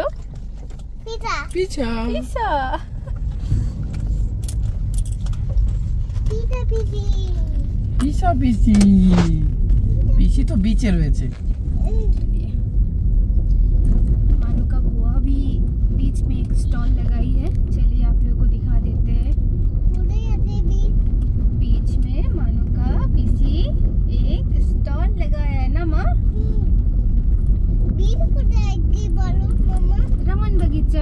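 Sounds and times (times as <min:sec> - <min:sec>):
car driving rumble: 0:00.0 - 0:31.0.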